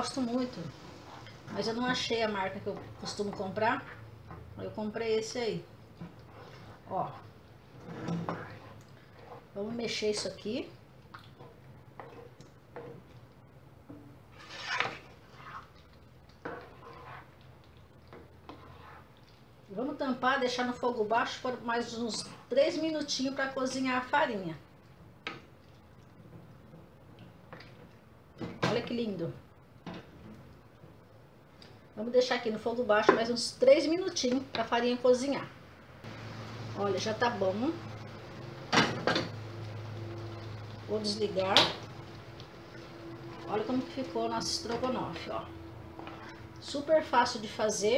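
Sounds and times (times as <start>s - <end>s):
spatula stirring thick sauce: 0.1s - 13.5s, 14.3s - 19.7s, 20.4s - 23.5s, 41.9s - 47.6s.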